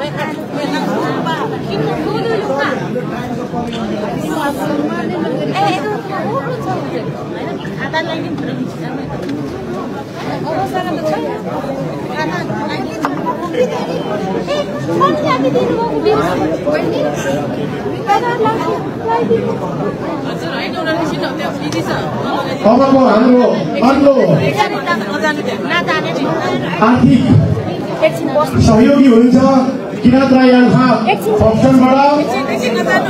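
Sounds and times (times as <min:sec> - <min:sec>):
crowd chatter in large hall: 0:00.0 - 0:33.0.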